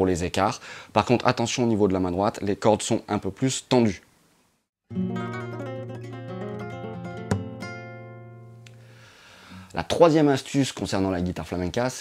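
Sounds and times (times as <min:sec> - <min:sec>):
flamenco guitar: 0:04.9 - 0:09.8.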